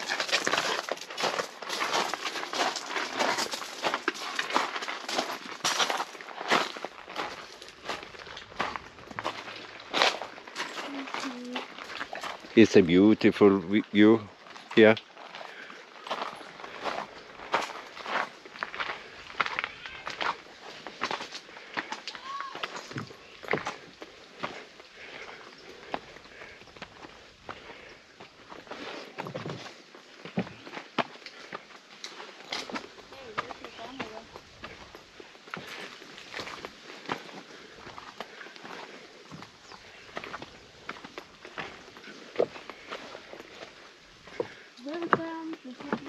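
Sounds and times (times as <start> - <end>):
footsteps on gravel and rock: 0.0 - 46.0.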